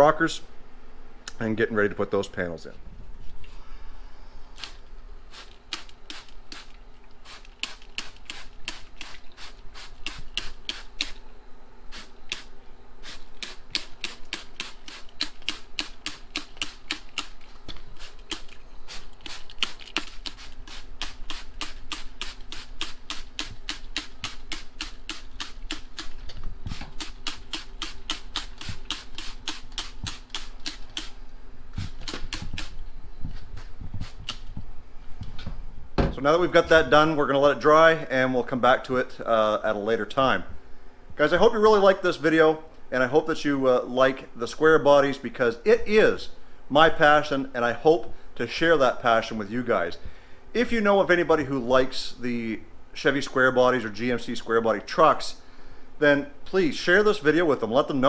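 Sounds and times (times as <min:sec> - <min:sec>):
spray bottle clicking and spritzing: 0:05.4 - 0:11.2, 0:12.0 - 0:12.5, 0:13.1 - 0:31.2, 0:31.8 - 0:32.8.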